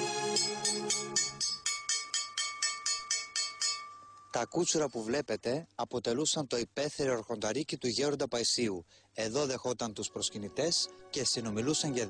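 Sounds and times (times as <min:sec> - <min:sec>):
hammer striking ringing metal: 0:00.4 - 0:04.3.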